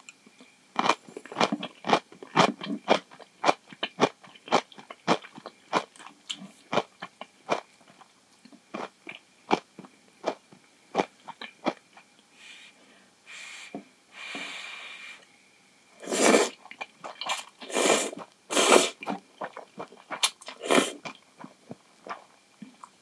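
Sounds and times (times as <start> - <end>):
crunchy chewing: 0.8 - 12.1.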